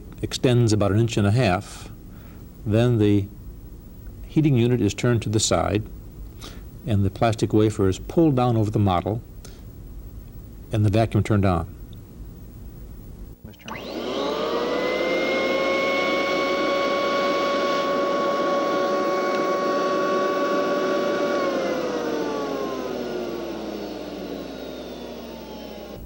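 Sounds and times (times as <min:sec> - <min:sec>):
vacuum motor whine: 0:13.5 - 0:26.0.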